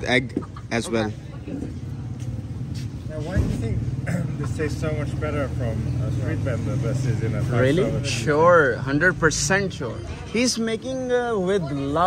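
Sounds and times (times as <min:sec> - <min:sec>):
low street hum: 0:00.0 - 0:12.0.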